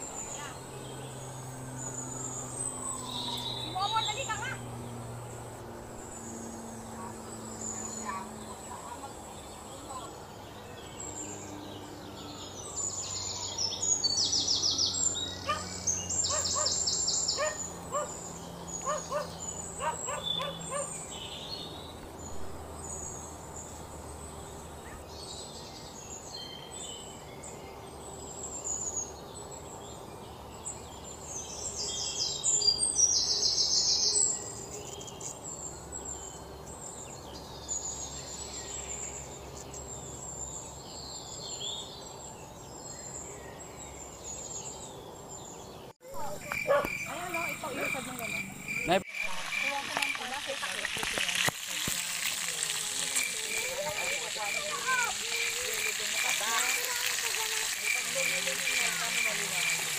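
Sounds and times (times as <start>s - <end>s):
birds chirping: 0.0s - 59.9s.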